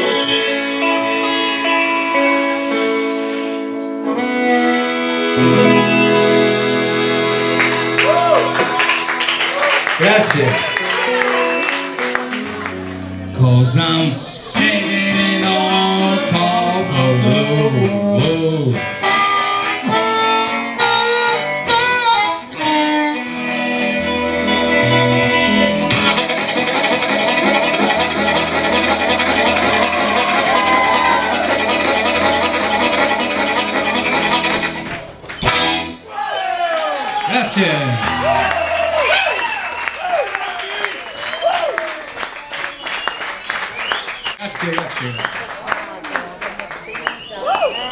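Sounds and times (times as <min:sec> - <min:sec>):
harmonica: 0:00.0 - 0:09.5, 0:14.8 - 0:36.0
electric guitar: 0:00.0 - 0:36.0, 0:37.8 - 0:39.6.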